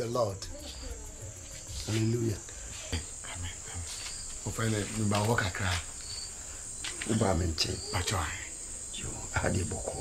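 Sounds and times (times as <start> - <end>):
crickets chirping: 0.0 - 10.0
man's voice: 7.0 - 10.0.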